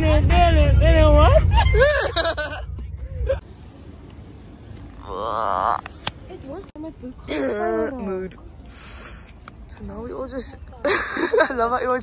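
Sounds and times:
bus engine rumble: 0:00.0 - 0:12.0.

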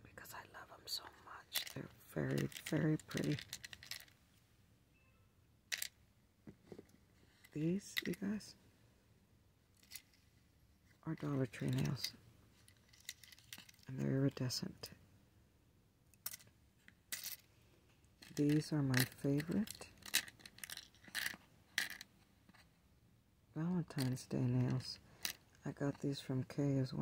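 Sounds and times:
plastic nails rattling in organizer: 0:01.5 - 0:04.2, 0:05.7 - 0:06.0, 0:11.6 - 0:13.9, 0:17.1 - 0:17.4, 0:18.2 - 0:22.1, 0:23.9 - 0:25.4.

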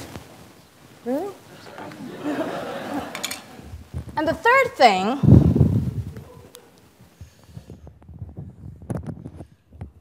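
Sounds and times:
microphone handling knocks and scrapes: 0:07.2 - 0:10.0.

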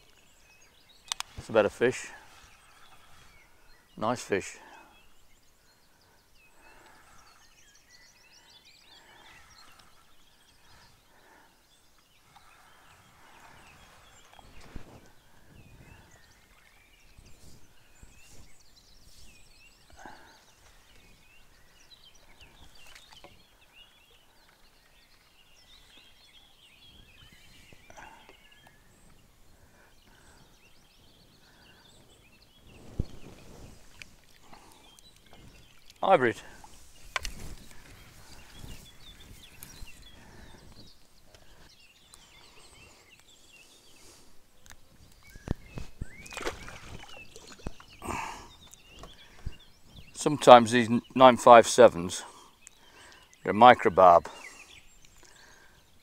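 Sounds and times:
songbirds chirping: 0:00.0 - 0:56.0
rustle: 0:31.4 - 0:50.1.

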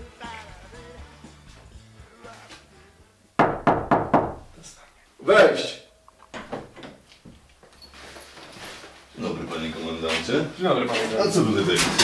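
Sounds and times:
knocks on wooden door: 0:03.4 - 0:04.5.

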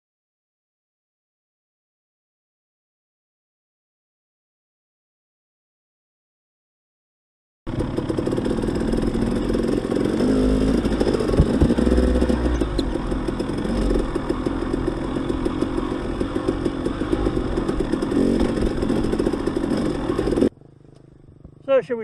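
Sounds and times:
dirt bike engine revving: 0:07.7 - 0:21.7.

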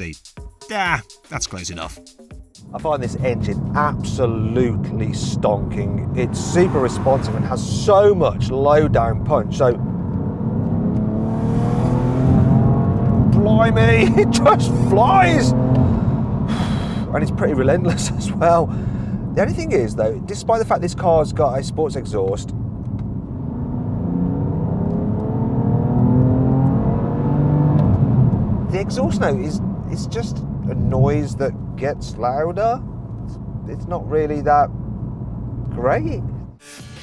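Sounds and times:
car engine accelerating: 0:02.6 - 0:36.6.

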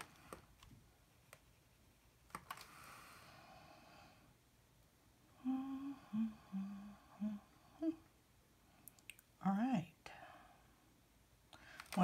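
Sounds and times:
woman humming: 0:05.3 - 0:08.1.

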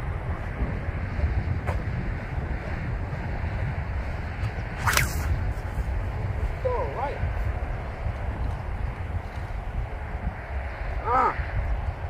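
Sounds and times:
wind rumble on microphone: 0:00.0 - 0:12.0
sling releasing with sharp crack: 0:04.8 - 0:05.4.

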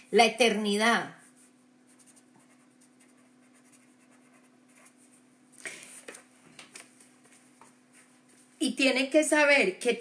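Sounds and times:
steady low hum: 0:00.0 - 0:08.8
faint scratching and rubbing: 0:01.2 - 0:05.2.

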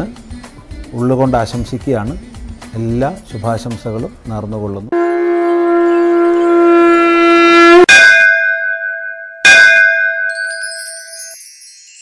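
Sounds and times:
conch shell blown: 0:04.9 - 0:08.8
bell strikes: 0:07.9 - 0:12.0
high shimmering chimes: 0:10.2 - 0:12.0.

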